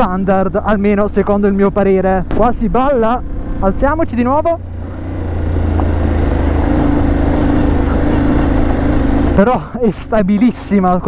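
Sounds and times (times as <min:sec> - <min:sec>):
motorcycle engine at steady revs: 0:03.4 - 0:09.8.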